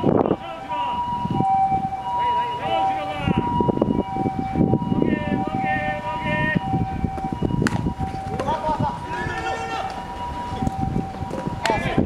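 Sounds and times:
players shouting: 8.4 - 10.6.

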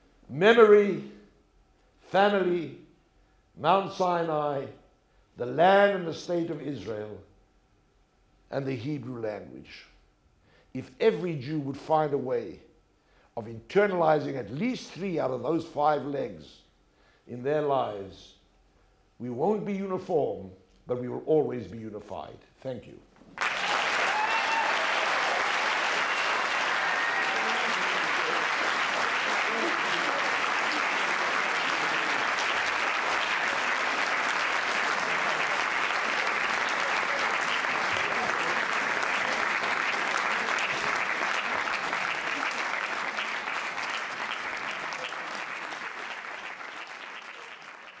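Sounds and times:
audience applauding: 23.3 - 48.0.

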